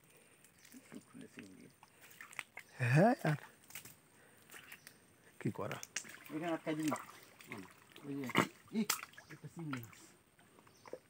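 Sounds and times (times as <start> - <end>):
wet mud squelches: 0.4 - 10.0.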